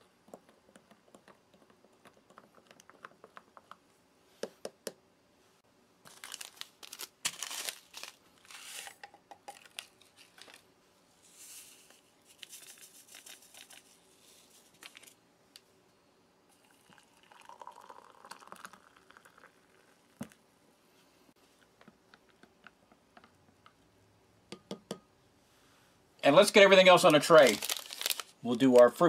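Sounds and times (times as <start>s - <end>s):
paper sachets crinkling and tearing: 6.1s - 9.0s, 26.7s - 29.0s.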